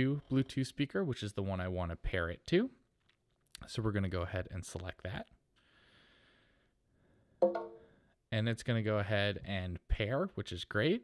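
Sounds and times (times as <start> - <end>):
speaker connection chime: 7.4 - 7.9.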